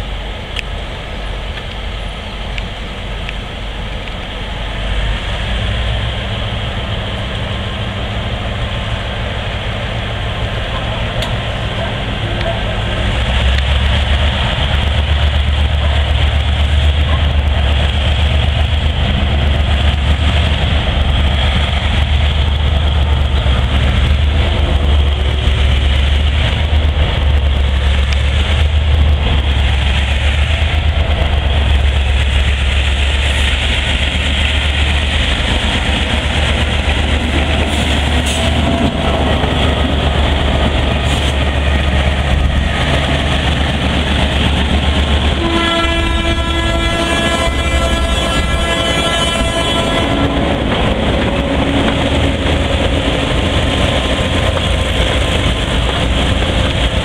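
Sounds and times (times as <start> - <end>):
diesel locomotive engine drone: 0.0 - 57.0
locomotive horn blast: 45.4 - 52.6.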